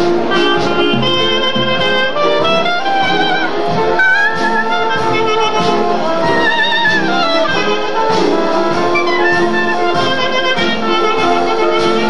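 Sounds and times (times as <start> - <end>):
jazz band playing: 0.0 - 12.0.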